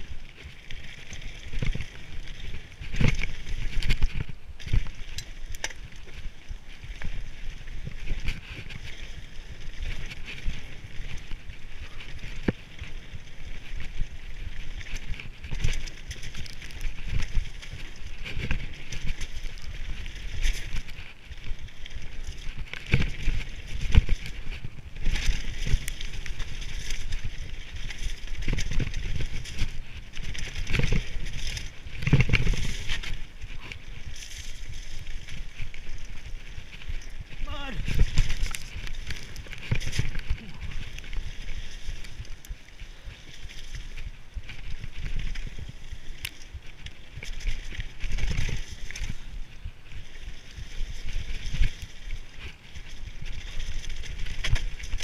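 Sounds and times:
bike rattling: 0.0 - 55.0
bike tyres crunching on gravel: 0.0 - 55.0
wind rumbling on microphone: 0.0 - 55.0.

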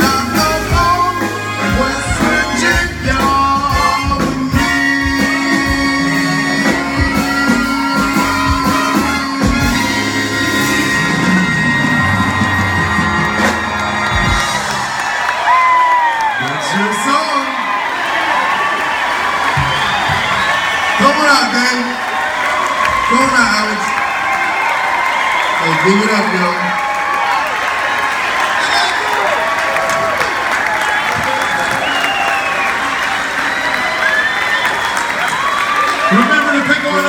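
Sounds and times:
live band playing: 0.0 - 37.0
crowd cheering and whooping: 6.0 - 37.0
drum hits: 12.0 - 15.0, 19.4 - 21.2.

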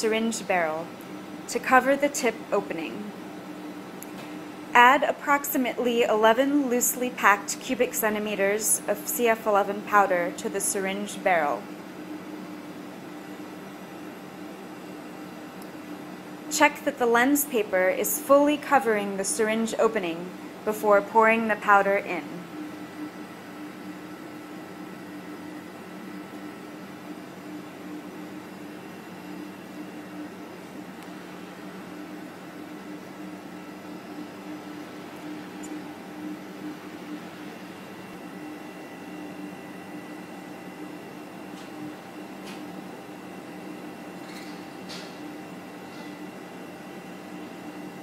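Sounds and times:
ventilation fan humming: 0.0 - 48.0.

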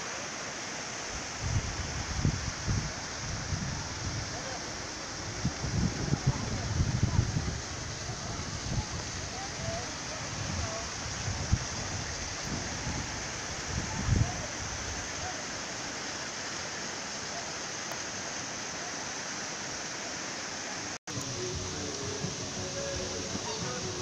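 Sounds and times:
waterfall rushing: 0.0 - 24.0
faint voices: 3.5 - 11.4, 21.1 - 24.0.

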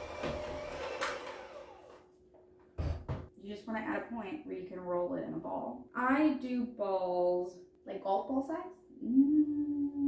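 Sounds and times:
electric hand mixer churning dough: 0.0 - 1.9.

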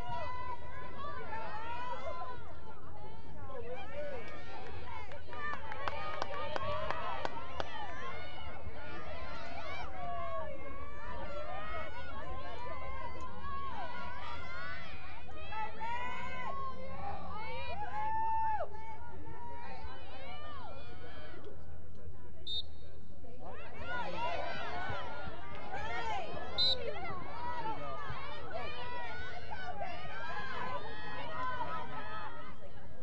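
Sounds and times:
voices calling out and chattering: 19.0 - 33.0.

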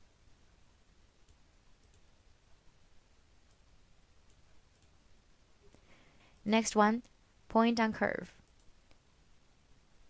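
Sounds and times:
faint steady hiss: 0.0 - 10.0
computer mouse clicks: 1.2 - 2.1, 4.2 - 5.0.

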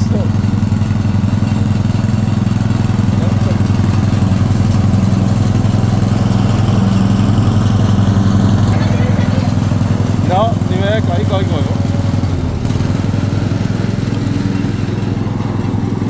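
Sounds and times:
lawn mower engine running: 0.0 - 16.0.

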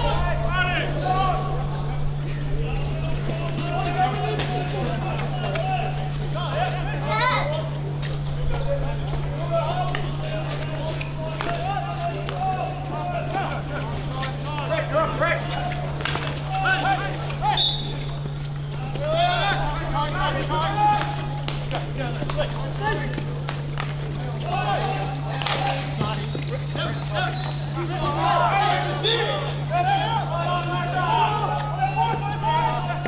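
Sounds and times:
players shouting: 0.0 - 7.8, 8.7 - 33.0.

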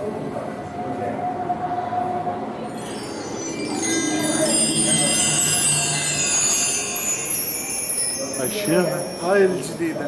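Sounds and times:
background din with held tone: 0.0 - 10.0
bright jingling chime: 2.7 - 10.0.

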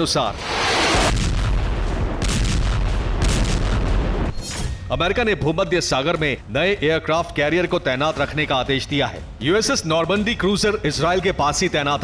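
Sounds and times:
missile launch rumbling blast: 0.3 - 4.3.

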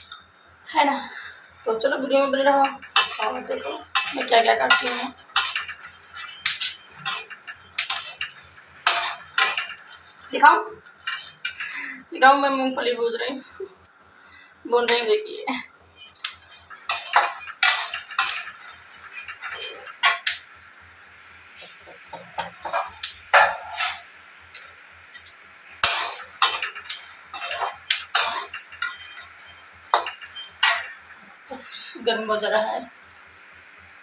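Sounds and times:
kitchen utensils and dishes clattering: 0.0 - 0.3, 1.0 - 11.9, 14.8 - 15.2, 16.0 - 20.8, 21.5 - 34.0.

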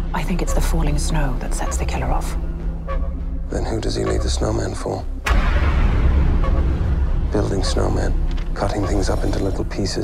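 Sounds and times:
deep boom: 5.2 - 8.1.

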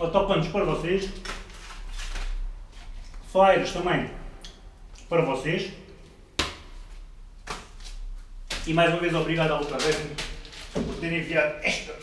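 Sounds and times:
plastic packaging crinkling: 7.8 - 11.0.

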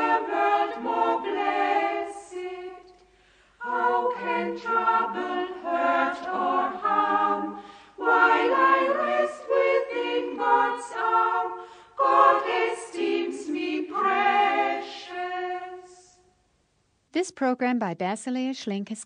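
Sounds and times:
choir singing a hymn: 0.0 - 2.9, 3.5 - 16.3.

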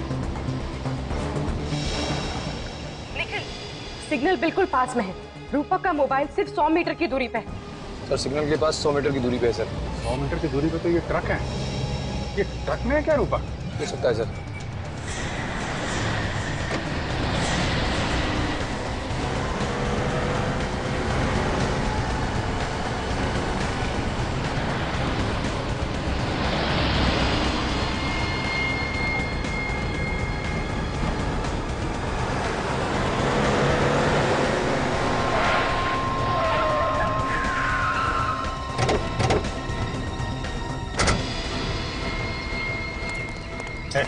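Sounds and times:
dramatic background music: 0.0 - 44.0
traffic and engine noise: 0.0 - 44.0
vehicle whooshes: 30.7 - 39.7.

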